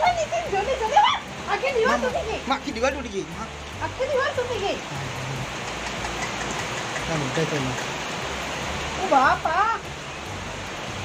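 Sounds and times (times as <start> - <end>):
floodwater rushing down street: 0.0 - 11.0.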